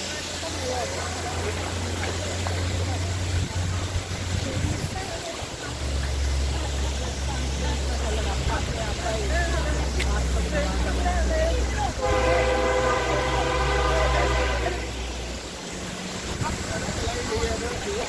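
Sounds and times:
voices: 0.0 - 18.0
horn-like chord blast: 12.0 - 15.0.

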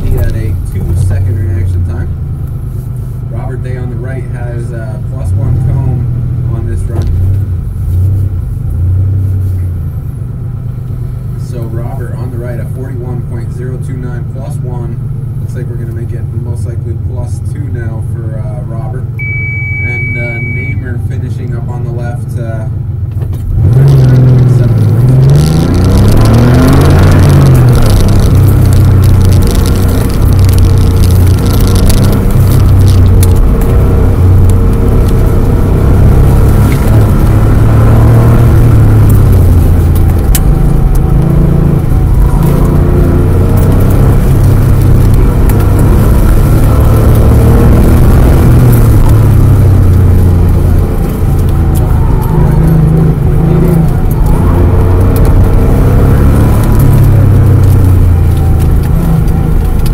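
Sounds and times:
car engine revving: 0.0 - 59.9.

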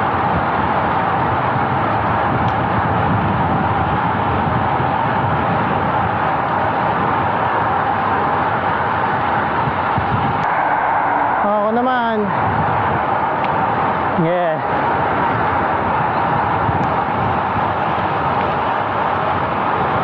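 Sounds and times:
tyre noise on asphalt: 0.0 - 20.0
wind rushing on microphone: 0.0 - 20.0.

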